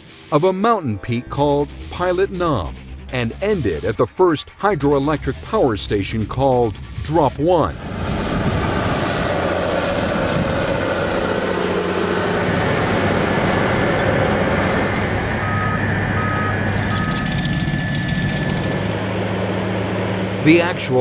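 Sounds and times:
heavy machinery engine drone: 6.7s - 21.0s
backup alarm beeps: 15.4s - 18.8s.

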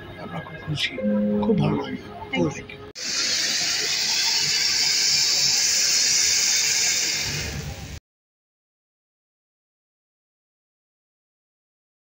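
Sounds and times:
spark fountain hissing: 3.0s - 8.0s.

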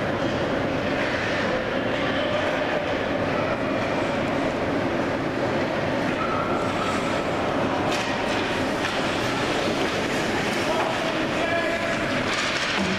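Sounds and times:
ice rink rumble and hiss: 0.0s - 12.9s.

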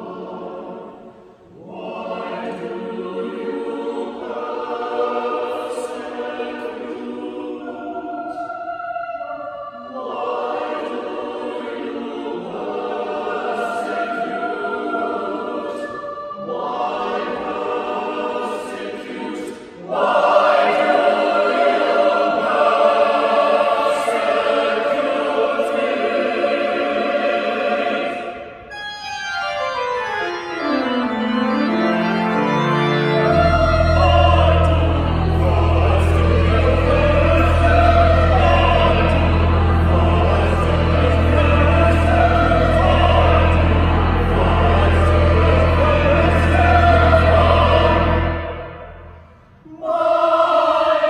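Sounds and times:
choir singing unaccompanied: 0.0s - 51.0s.

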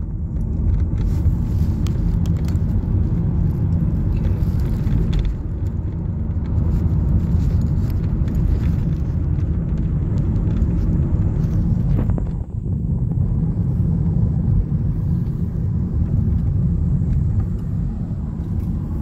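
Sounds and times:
car road and engine rumble: 0.0s - 19.0s.

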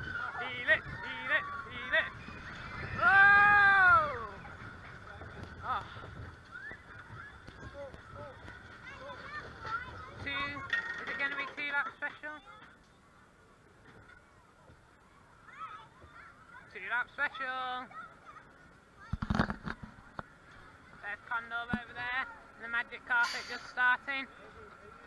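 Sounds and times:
riders screaming and shouting: 0.0s - 9.2s
roller coaster rumbling on track: 0.0s - 11.6s.

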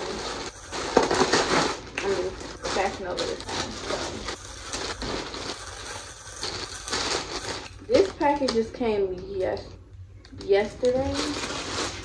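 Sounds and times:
plastic bag crinkling: 0.0s - 8.8s, 10.4s - 12.0s.

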